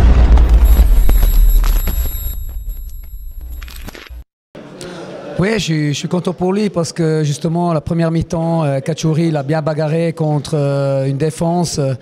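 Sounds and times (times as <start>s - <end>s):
deep boom with rumble: 0.0s - 2.7s.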